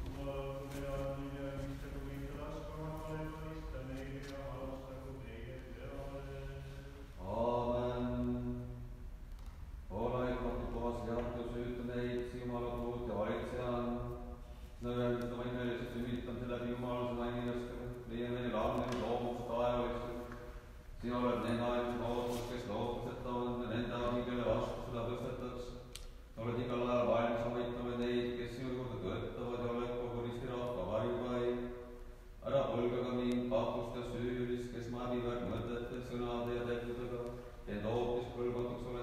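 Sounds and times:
man chanting prayer: 0.0s - 9.0s, 9.9s - 39.0s.

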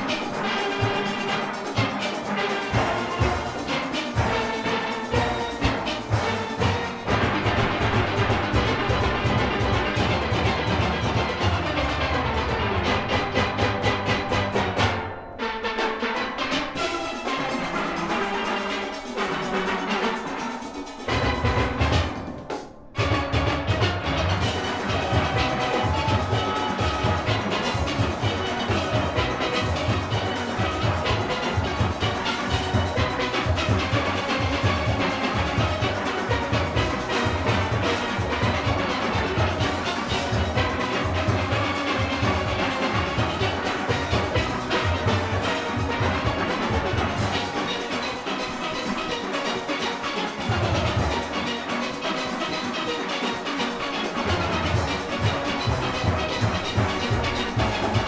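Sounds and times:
drum kit and percussion: 0.0s - 15.1s, 16.8s - 58.0s
steelpans playing: 0.0s - 58.0s.

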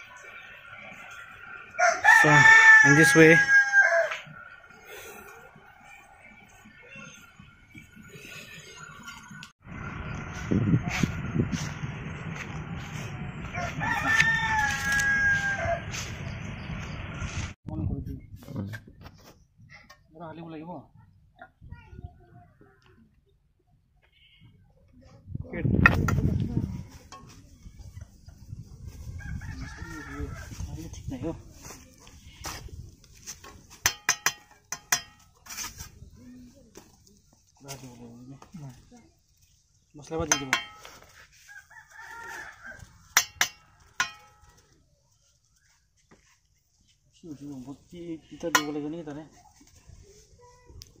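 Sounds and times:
rooster crowing: 1.6s - 4.4s, 13.4s - 16.3s, 29.1s - 30.7s, 41.3s - 44.4s
steel trowel tapping on brick: 33.8s - 35.4s, 43.1s - 44.6s.

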